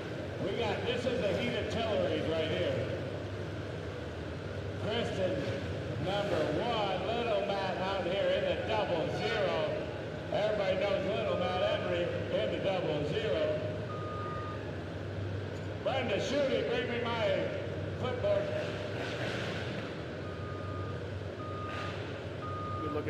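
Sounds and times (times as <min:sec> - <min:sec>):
low engine rumble: 0:00.0 - 0:23.0
reversing alarm beeps: 0:13.8 - 0:14.7, 0:20.2 - 0:23.0.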